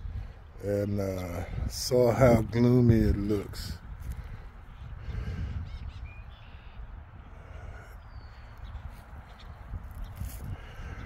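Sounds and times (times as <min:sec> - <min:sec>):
wind rumble: 0:00.0 - 0:11.0.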